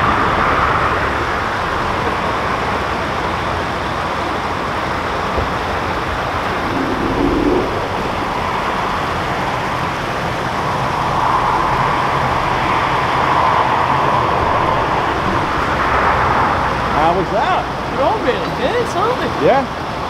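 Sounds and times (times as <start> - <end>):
water rushing: 0.0 - 20.0.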